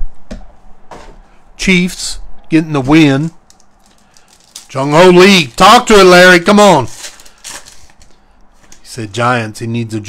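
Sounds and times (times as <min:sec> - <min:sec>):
foil wrapper crinkling: 0:03.4 - 0:08.2
soft handling noise: 0:06.9 - 0:09.0.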